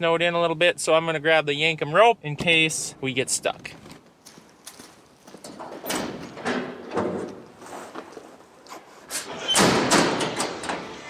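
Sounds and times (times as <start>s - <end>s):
footsteps crunching on wood chips: 4.0s - 5.4s.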